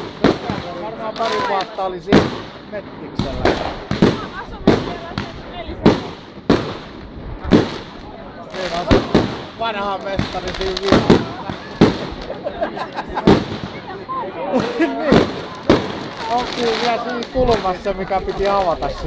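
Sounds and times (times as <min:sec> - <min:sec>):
fireworks bursting: 0:00.0 - 0:19.0.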